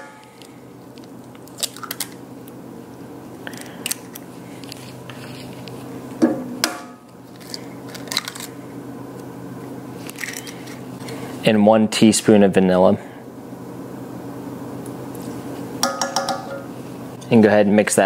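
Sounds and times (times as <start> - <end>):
steady low hum: 0.0 - 18.0
eggshells cracking: 0.3 - 2.6, 7.3 - 8.6.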